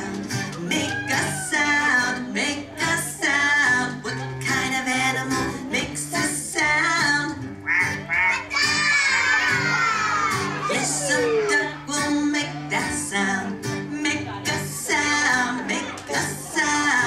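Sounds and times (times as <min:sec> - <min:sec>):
children and adult singing: 0:00.0 - 0:07.5, 0:08.1 - 0:17.0
guitar accompaniment: 0:00.0 - 0:17.0
high voice sliding down: 0:10.6 - 0:11.8.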